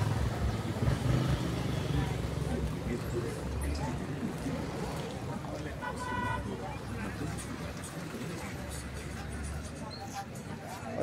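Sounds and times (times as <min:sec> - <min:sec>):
street traffic: 0:00.0 - 0:11.0
vehicle engine rumbling: 0:00.0 - 0:11.0.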